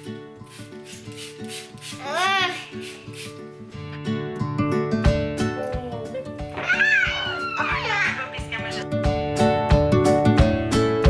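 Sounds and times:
background music with plucked notes: 0:00.0 - 0:11.0
brush rubbing through hair: 0:00.4 - 0:03.8.

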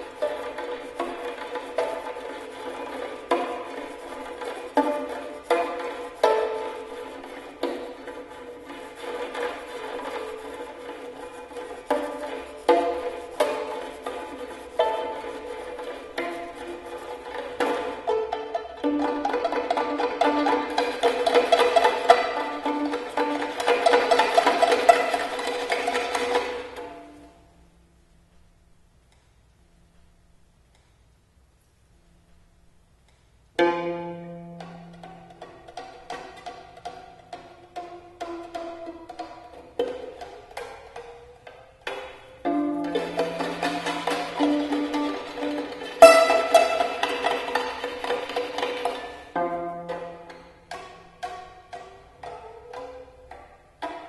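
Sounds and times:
violin rapid notes: 0:00.0 - 0:27.3, 0:41.8 - 0:54.0
held violin tone: 0:00.0 - 0:27.4, 0:33.6 - 0:54.0.

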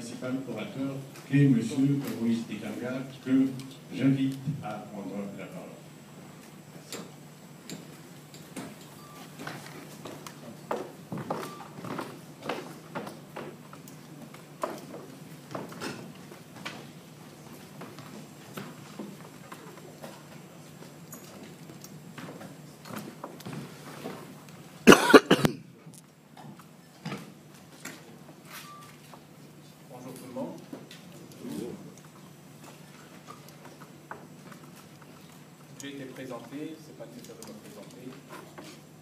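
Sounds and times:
footsteps on hard floor: 0:09.2 - 0:13.6
person coughing: 0:24.8 - 0:25.7.

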